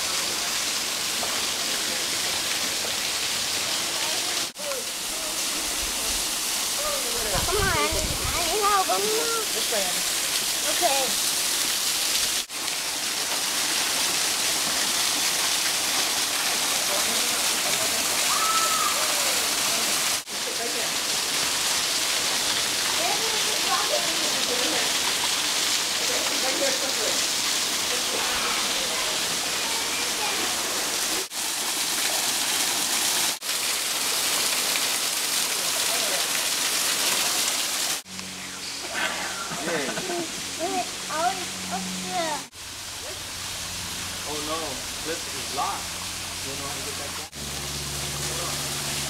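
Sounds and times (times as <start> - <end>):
waterfall rushing: 0.0 - 49.0.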